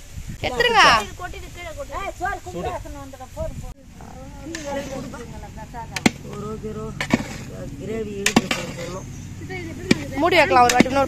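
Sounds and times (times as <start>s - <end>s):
people talking: 0.4s - 11.0s.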